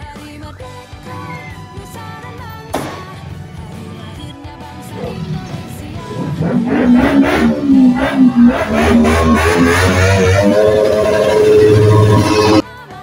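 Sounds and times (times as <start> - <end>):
motorcycle engine revving: 1.0 - 12.6.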